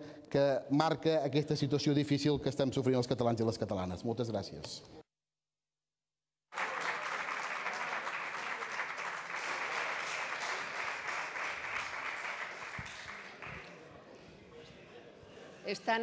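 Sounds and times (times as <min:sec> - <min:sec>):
crowd applauding: 0:06.5 - 0:13.8.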